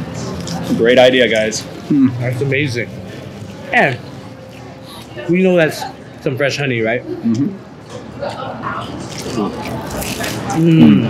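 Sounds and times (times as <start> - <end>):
faint murmured voices: 0.0 - 11.0
people chewing food: 0.2 - 5.4, 7.2 - 11.0.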